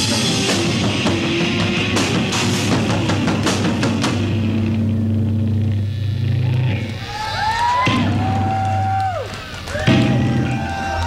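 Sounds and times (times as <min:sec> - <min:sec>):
drums and cymbals hit: 0:00.0 - 0:06.3, 0:07.8 - 0:09.0, 0:09.7 - 0:11.0
amplifier hum: 0:02.7 - 0:09.1.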